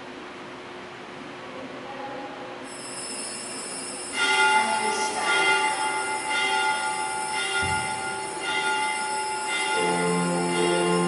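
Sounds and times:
sustained high chord: 4.0s - 11.0s.

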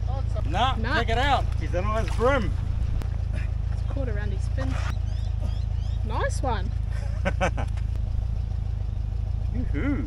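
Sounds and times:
low rumble: 0.0s - 10.0s.

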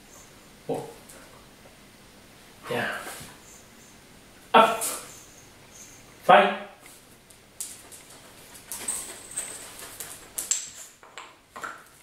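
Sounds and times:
dog claws clicking on tiled floor: 7.2s - 12.0s.

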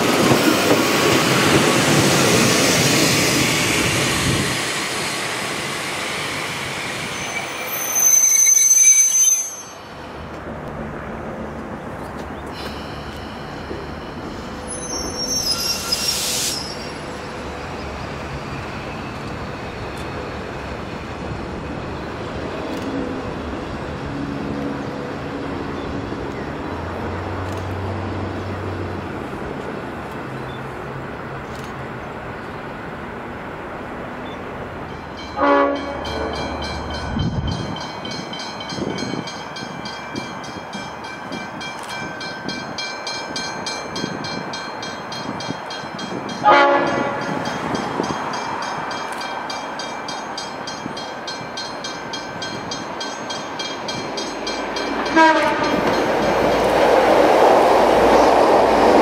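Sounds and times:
electric train rumbling: 0.0s - 59.0s
diesel locomotive horn blasts: 35.4s - 36.4s, 46.4s - 47.4s, 55.1s - 55.9s.

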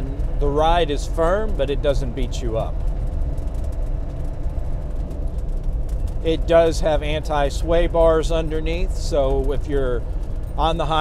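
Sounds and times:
engine drone inside vehicle: 0.0s - 11.0s
road noise: 0.0s - 11.0s.

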